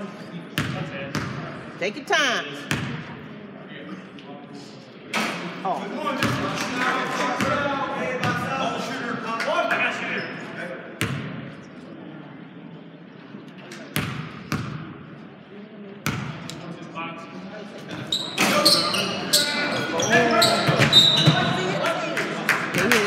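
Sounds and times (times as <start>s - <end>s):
shoe squeaks: 18.0s - 21.7s.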